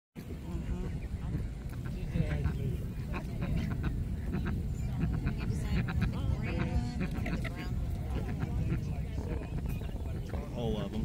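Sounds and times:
distant indistinct voices: 0.2s - 11.0s
steady low rumble: 0.2s - 11.0s.

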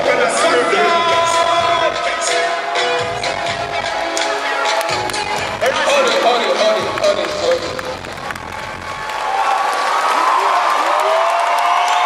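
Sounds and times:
backing track bass beat: 0.0s - 9.2s
crowd noise: 0.0s - 12.0s.

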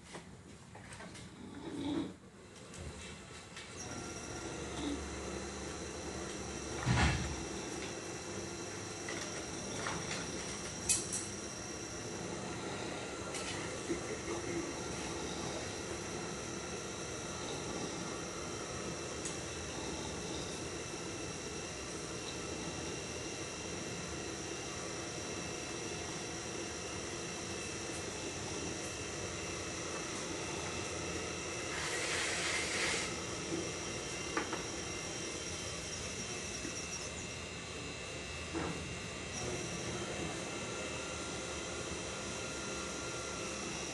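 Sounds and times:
potter's wheel motor whine: 1.1s - 43.9s.

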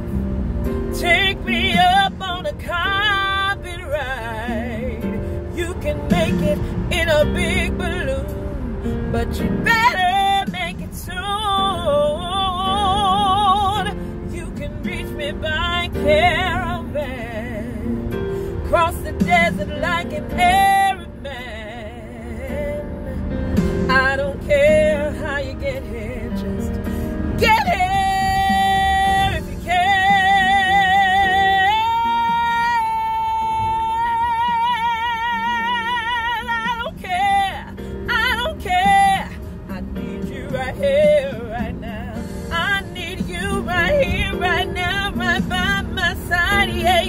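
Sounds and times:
low car cabin rumble: 0.0s - 47.0s
woman singing soul ballad: 0.0s - 47.0s.

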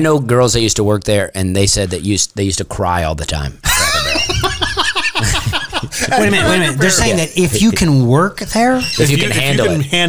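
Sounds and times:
hearty laughter: 3.6s - 6.8s.

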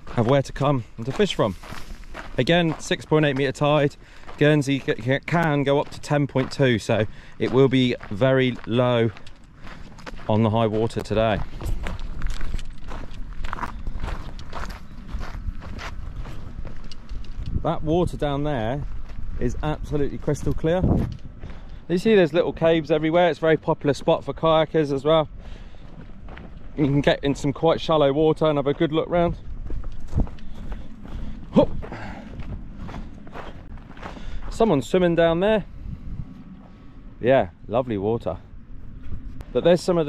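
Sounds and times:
footsteps on dirt path: 0.0s - 40.0s
low steady rumble: 24.4s - 40.0s.

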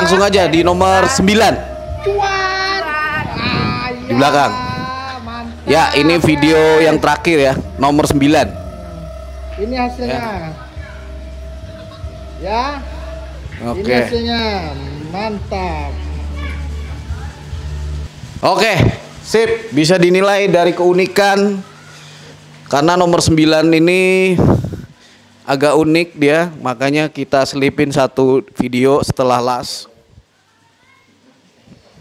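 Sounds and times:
child singing long notes: 0.0s - 13.6s
music with deep bass: 0.0s - 19.0s.

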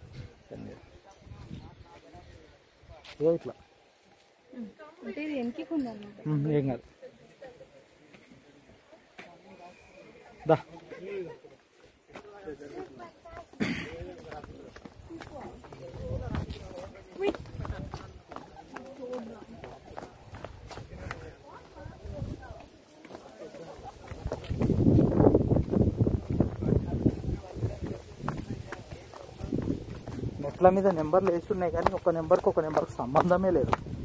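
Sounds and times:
people talking: 4.5s - 33.8s
footsteps on stone steps: 11.5s - 34.0s.

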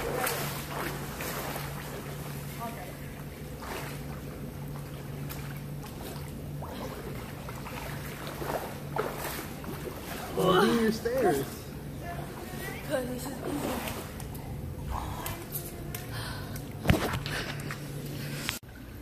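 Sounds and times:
steady low hum: 0.0s - 19.0s
water splashing and sloshing: 0.0s - 19.0s
woman's voice: 2.6s - 3.1s, 10.4s - 14.0s.

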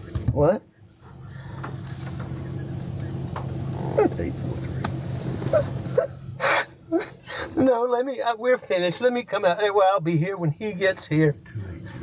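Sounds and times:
steady low hum: 0.0s - 12.0s
man whimpering and sobbing: 5.5s - 7.8s
sharp breath: 6.4s - 7.6s.

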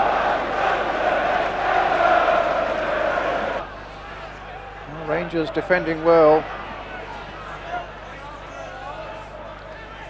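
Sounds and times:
stadium crowd chanting: 0.0s - 3.7s
crowd background: 0.0s - 10.0s.

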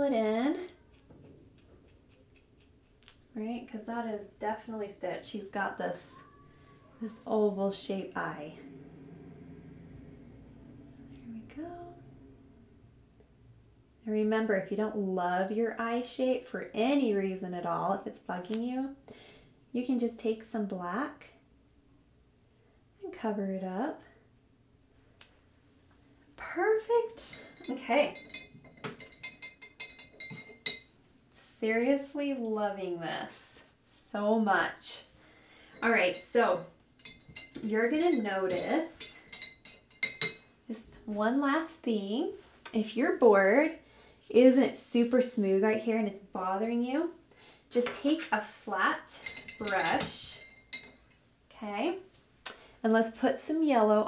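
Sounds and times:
brush ticking on canvas: 1.0s - 3.3s.

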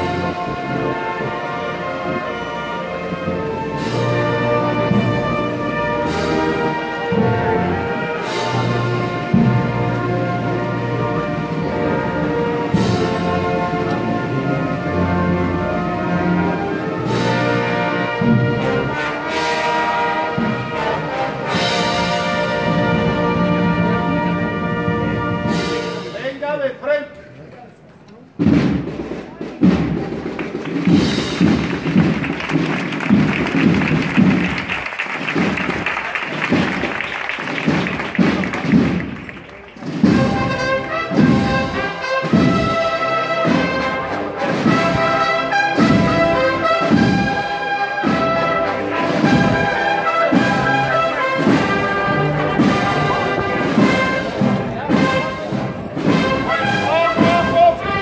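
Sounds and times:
cornets playing melody: 0.0s - 26.2s, 35.8s - 58.0s
marching drums: 0.0s - 26.8s, 28.3s - 58.0s
drum rattle: 28.4s - 41.6s.

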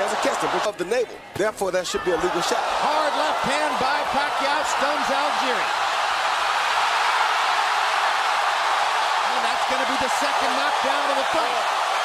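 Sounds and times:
man's voice: 0.0s - 5.7s, 9.3s - 11.7s
arena crowd cheering: 0.0s - 12.0s.

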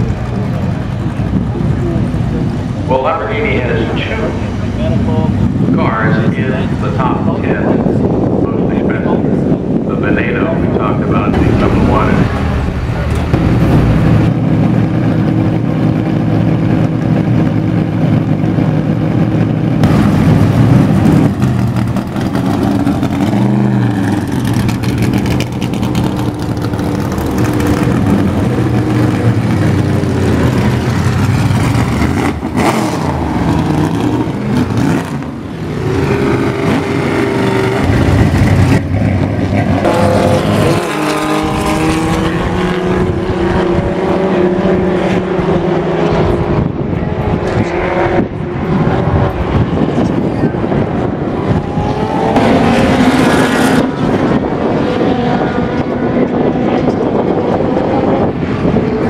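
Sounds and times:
race cars passing by: 0.0s - 59.0s.

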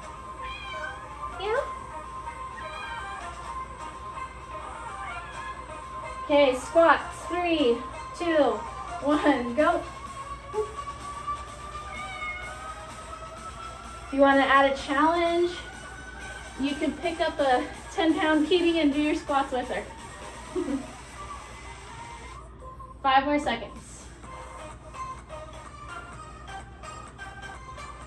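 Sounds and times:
quiet background music: 0.0s - 28.0s
cat meowing: 0.4s - 1.4s, 2.6s - 3.4s, 11.8s - 12.9s.

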